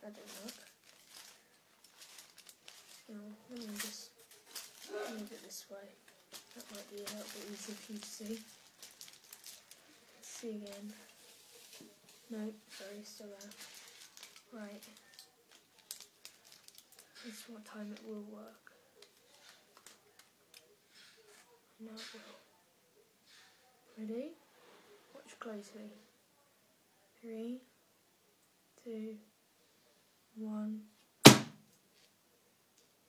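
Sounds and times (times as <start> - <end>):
aluminium foil crinkling: 0.0 - 21.4
hand slapping foil thump: 31.2 - 31.6.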